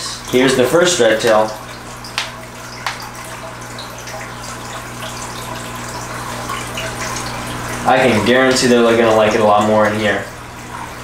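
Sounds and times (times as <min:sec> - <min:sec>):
water trickling and splashing: 0:00.0 - 0:11.0.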